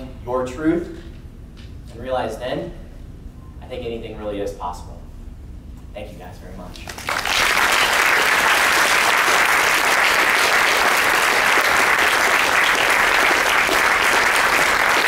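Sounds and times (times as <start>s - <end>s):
audience applause: 6.9s - 15.0s.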